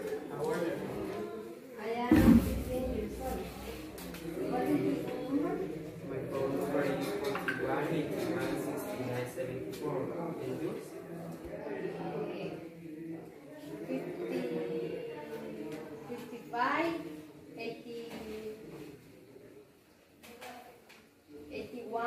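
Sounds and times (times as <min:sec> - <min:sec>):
students talking: 0:00.0 - 0:19.7
loud low bump: 0:02.1 - 0:04.7.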